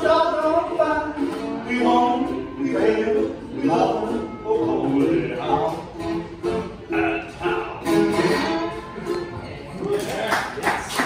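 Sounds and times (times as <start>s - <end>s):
man singing: 0.0s - 8.6s
ukulele and lap steel guitar: 0.0s - 10.1s
people clapping: 9.8s - 11.0s.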